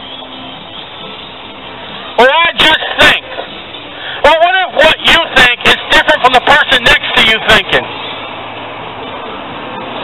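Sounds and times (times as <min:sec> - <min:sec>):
outdoor background noise: 0:00.0 - 0:10.0
man speaking: 0:02.2 - 0:03.3, 0:04.2 - 0:07.9.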